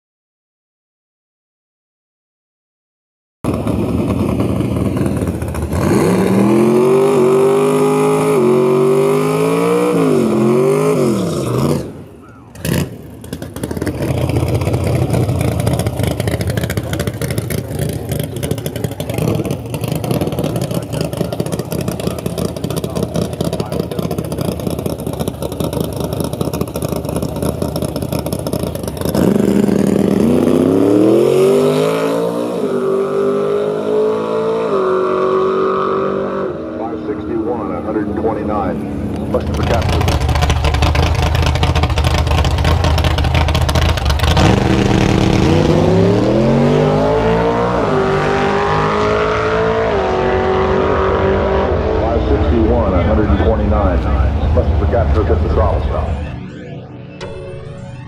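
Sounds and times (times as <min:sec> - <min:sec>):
drag car engine revving: 0:03.5 - 0:57.0.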